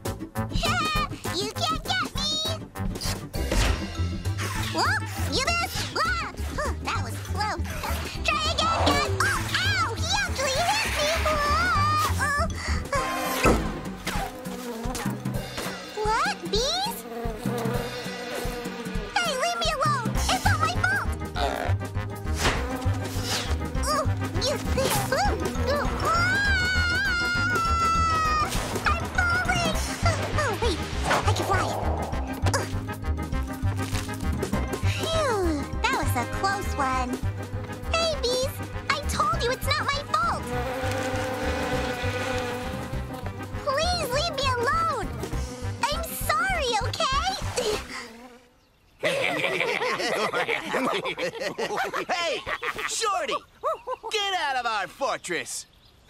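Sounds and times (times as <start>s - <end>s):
cartoon insect swarm buzzing: 7.6s - 48.7s.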